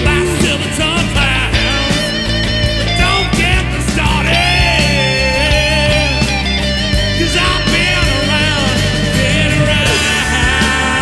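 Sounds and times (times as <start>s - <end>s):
lead guitar wavering notes: 0.0s - 11.0s
rock band playing: 0.0s - 11.0s
steady drum beat: 0.0s - 11.0s.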